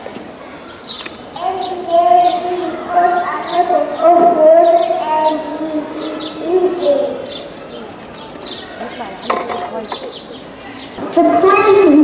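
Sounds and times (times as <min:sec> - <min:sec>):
murmur of children's voices: 0:00.0 - 0:12.0
small birds chirping: 0:00.4 - 0:12.0.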